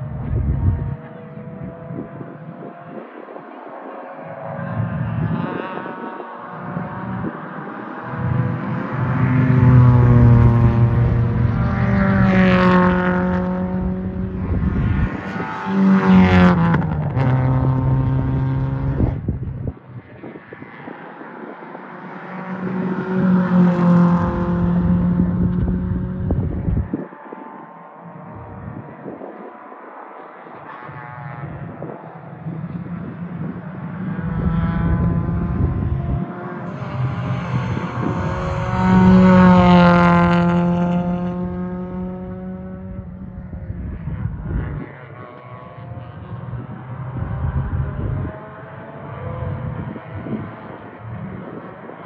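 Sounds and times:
race car engines at full throttle: 0:00.0 - 0:52.0
race car passing close: 0:00.1 - 0:27.7, 0:30.4 - 0:52.0.

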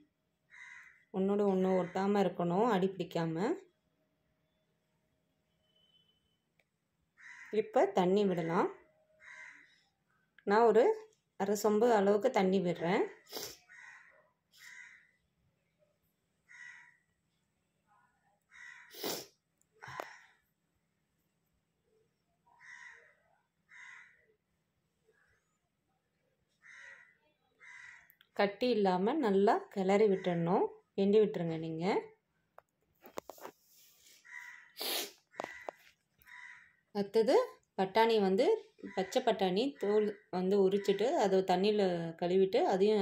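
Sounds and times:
crow cawing: 0:00.5 - 0:01.0, 0:07.2 - 0:07.6, 0:09.2 - 0:09.8, 0:13.7 - 0:15.1, 0:16.5 - 0:17.0, 0:18.5 - 0:19.0, 0:22.6 - 0:24.2, 0:26.6 - 0:28.1, 0:34.2 - 0:36.8
harsh animal calls: 0:34.2 - 0:36.7.

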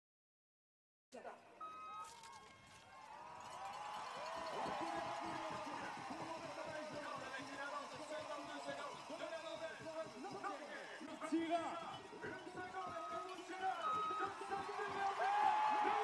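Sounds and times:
short beep: 0:01.6 - 0:02.5, 0:12.9 - 0:14.4
crowd cheering and shouting: 0:02.0 - 0:16.0.

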